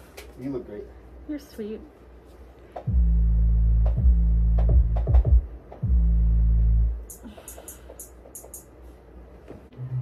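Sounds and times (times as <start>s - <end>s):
deep synthesizer bass note: 2.9s - 7.1s.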